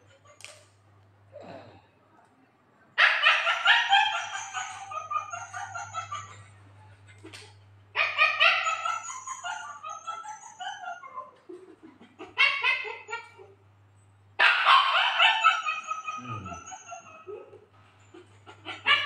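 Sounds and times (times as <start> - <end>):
faint low hum: 0.0 - 19.0
loud animal calls: 14.4 - 17.4.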